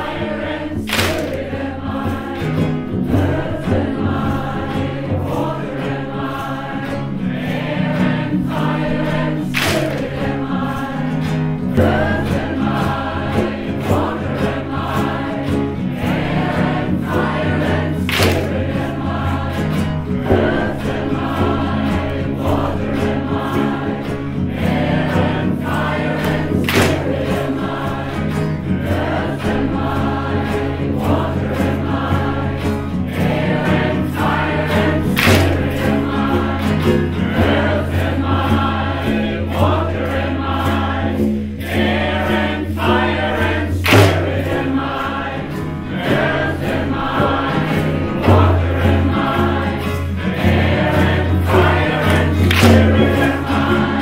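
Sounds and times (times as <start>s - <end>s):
acoustic guitar: 0.0s - 54.0s
frame drum: 0.0s - 54.0s
group singing a chant in unison: 0.0s - 54.0s
sharp loud clap: 0.8s - 1.7s, 9.1s - 12.4s, 18.0s - 22.6s, 26.2s - 27.6s, 33.7s - 37.0s, 43.8s - 44.8s, 51.2s - 53.8s.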